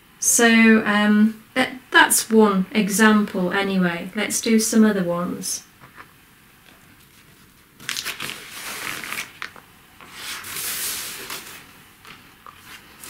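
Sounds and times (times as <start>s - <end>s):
paper crumpling and rustling: 6.9s - 13.0s.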